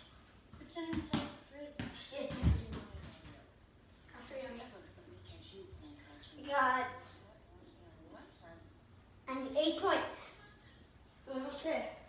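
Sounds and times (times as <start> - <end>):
baseball thudding on floor: 0.5 - 3.5.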